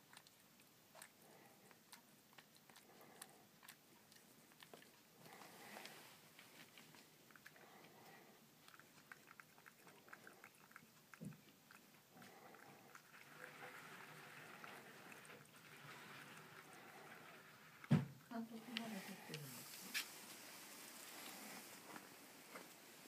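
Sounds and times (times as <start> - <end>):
cat crunching and chewing food: 0.0 - 23.0
soft thump: 17.9 - 18.2.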